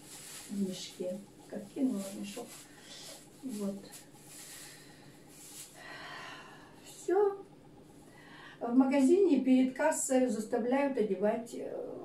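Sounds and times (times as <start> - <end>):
plastic gloves crinkling: 0.0 - 6.0.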